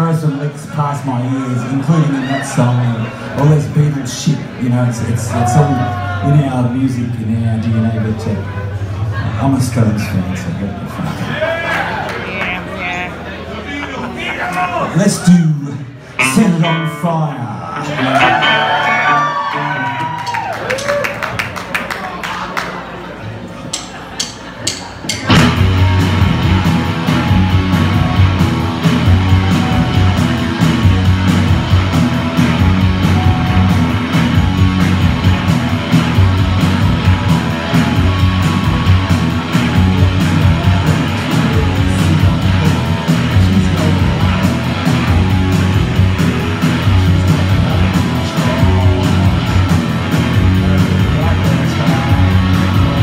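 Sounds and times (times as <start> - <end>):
rock band playing live: 16.0 - 21.3, 24.0 - 53.0.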